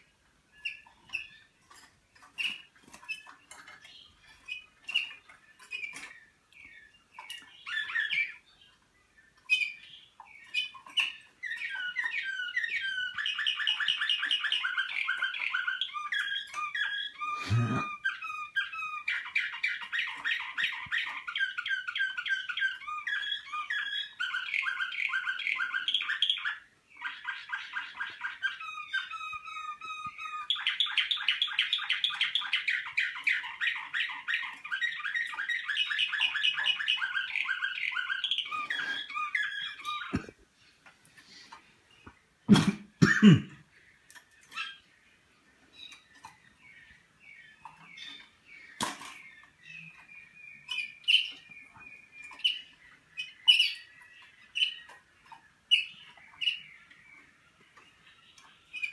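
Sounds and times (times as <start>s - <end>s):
canaries singing: 0.0s - 58.9s.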